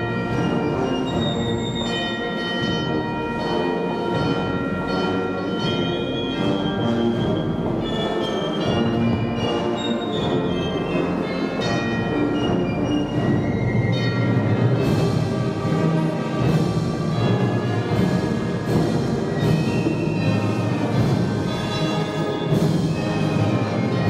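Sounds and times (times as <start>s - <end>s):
brass band playing a hymn: 0.0s - 24.0s
drum beats: 12.1s - 24.0s.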